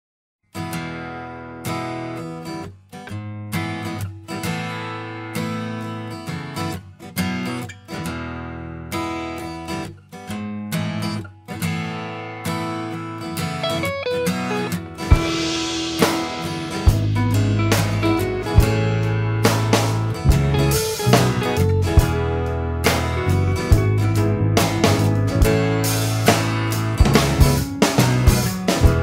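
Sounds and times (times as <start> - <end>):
guitar strumming chords: 0.6 - 29.0
drums: 13.5 - 29.0
low bass: 15.1 - 29.0.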